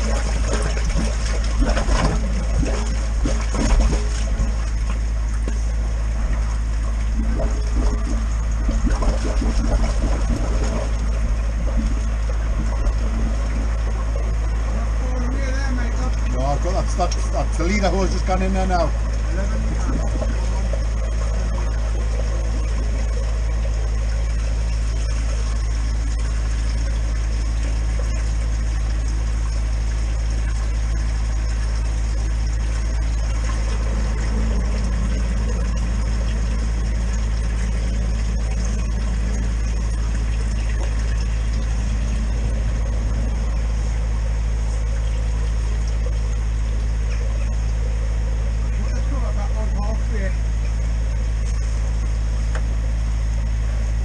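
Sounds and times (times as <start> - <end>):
engine running low hum: 0.0 - 54.0.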